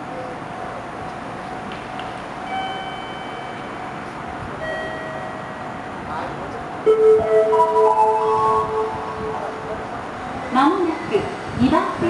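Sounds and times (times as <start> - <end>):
station platform background noise: 0.0 - 12.0
soft chime tones: 2.5 - 3.9, 4.6 - 5.7, 6.9 - 9.7.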